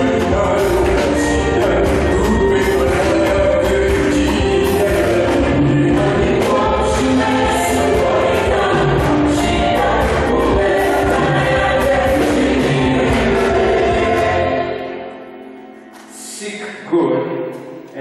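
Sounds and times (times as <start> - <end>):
choir singing a hymn: 0.0 - 15.4
instrumental backing music: 0.0 - 18.0.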